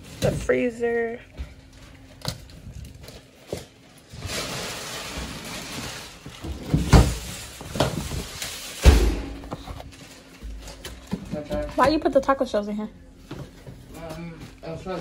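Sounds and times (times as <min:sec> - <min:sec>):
plastic packaging rustling: 0:01.5 - 0:12.2
freezer drawer shutting: 0:05.1 - 0:09.8.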